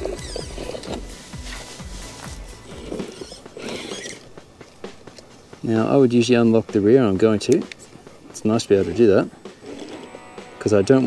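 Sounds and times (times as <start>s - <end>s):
electric motor whirring: 0.0s - 4.3s
tyres clicking and scraping on rock: 0.0s - 5.3s, 7.4s - 10.1s
background music with beat: 0.0s - 11.0s.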